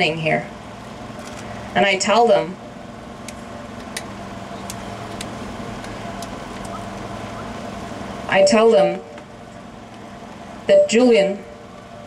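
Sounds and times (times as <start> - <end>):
low machine hum: 0.0 - 12.0
outdoor background noise: 0.0 - 12.0.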